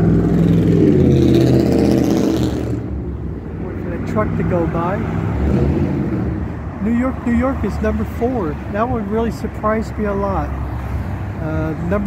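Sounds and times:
traffic rumbling past: 0:00.0 - 0:12.0.

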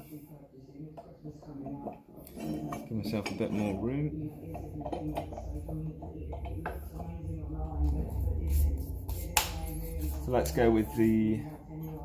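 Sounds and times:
faint background music: 0:00.0 - 0:12.0
voices: 0:00.0 - 0:12.0
low rumble: 0:03.7 - 0:12.0.

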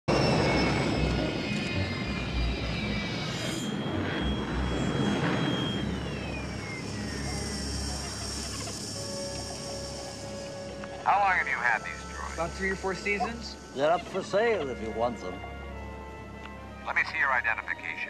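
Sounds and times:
hovering vehicle hum: 0:00.0 - 0:17.6
street background noise: 0:00.1 - 0:18.0.

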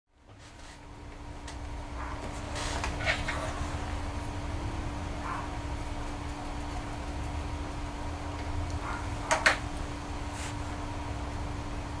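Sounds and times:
electrical hum: 0:00.1 - 0:12.0
low rumble of room noise: 0:00.1 - 0:12.0.

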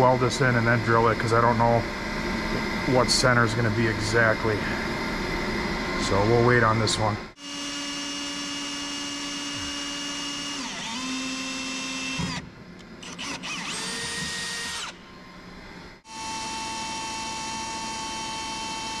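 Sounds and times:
cordless drill drilling steel: 0:07.4 - 0:12.4, 0:13.0 - 0:15.0, 0:16.1 - 0:19.0.

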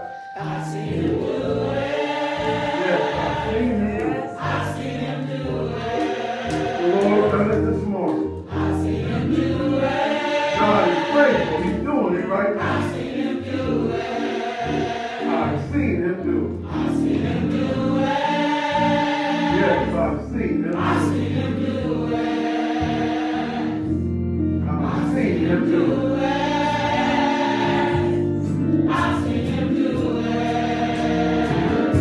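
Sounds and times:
choir singing gospel: 0:00.0 - 0:32.0
low keyboard notes: 0:00.0 - 0:32.0.

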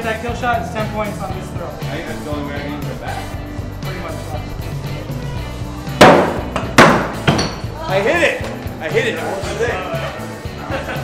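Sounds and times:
background music: 0:00.0 - 0:11.0
axes hitting wooden targets: 0:06.0 - 0:07.6.

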